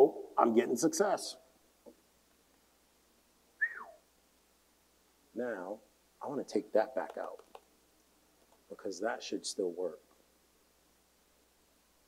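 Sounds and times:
person whistling falling note: 3.6s - 4.0s.

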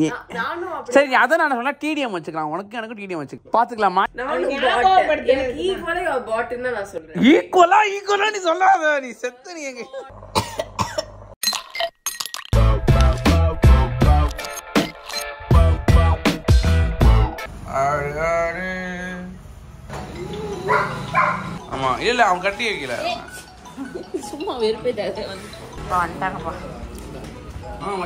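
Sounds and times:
short coughs: 10.4s - 11.2s
woman's voice: 23.8s - 26.8s.

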